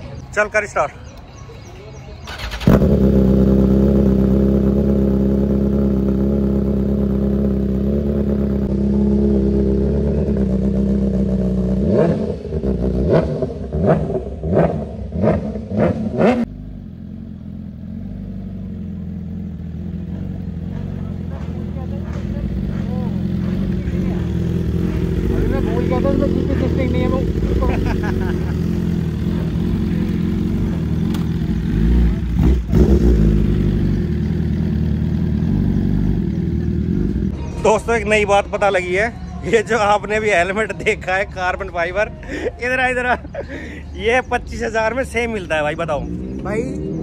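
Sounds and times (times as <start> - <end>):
sport bike engine idling: 0.2 - 13.0, 16.5 - 46.9
motorcycle throttle blips: 2.2 - 37.6.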